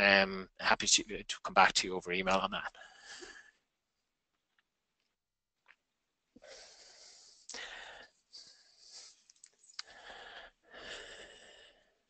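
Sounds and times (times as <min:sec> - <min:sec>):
person breathing into microphone: 0:06.4 - 0:12.0.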